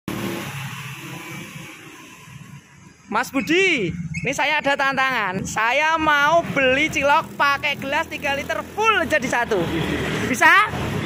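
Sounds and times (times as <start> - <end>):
passing vehicle engine: 0.1 - 3.0, 5.3 - 11.0.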